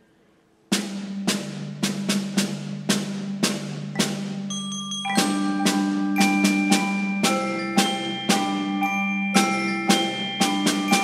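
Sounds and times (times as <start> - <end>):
marimbas and glockenspiel playing: 3.8 - 11.0.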